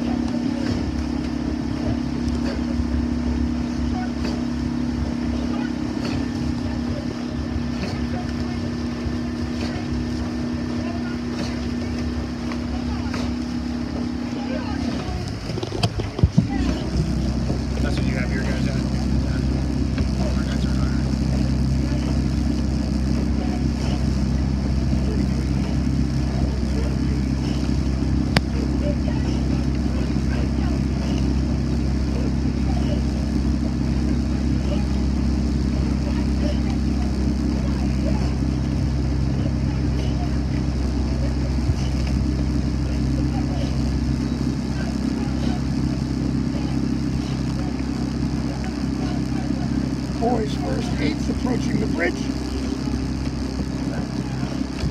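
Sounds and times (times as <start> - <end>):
outboard motor droning: 0.0 - 54.9.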